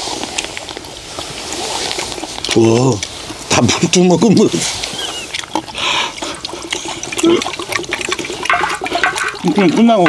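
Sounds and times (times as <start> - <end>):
water pouring into metal cup: 5.2 - 10.0
spoon scraping iron pan: 8.4 - 10.0.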